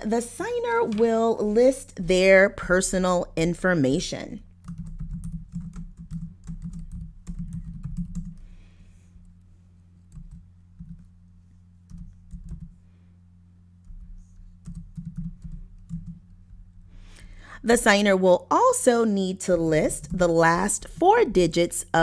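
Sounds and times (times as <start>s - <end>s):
steady low hum: 0.0s - 22.0s
keyboard typing: 4.6s - 8.5s, 10.1s - 11.1s, 11.8s - 12.8s, 13.8s - 16.4s.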